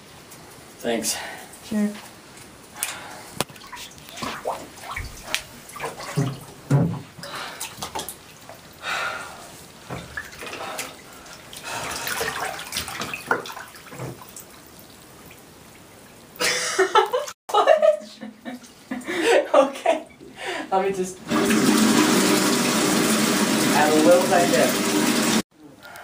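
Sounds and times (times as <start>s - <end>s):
water splashing in bathtub: 2.8s - 8.8s, 9.8s - 15.8s, 21.3s - 25.4s.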